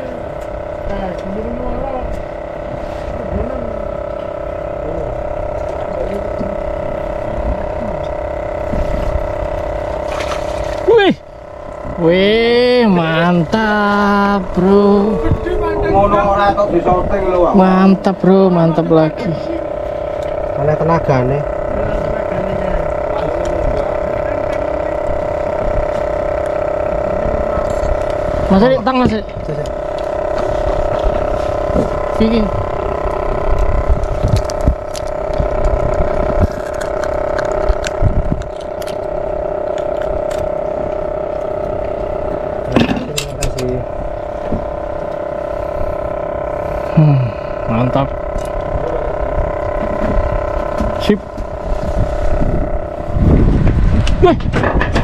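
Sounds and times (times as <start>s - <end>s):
boat engine humming: 0.0s - 55.0s.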